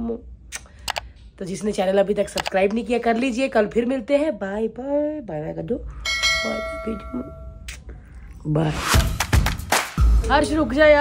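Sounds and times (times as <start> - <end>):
bell chime: 6.1 - 7.6.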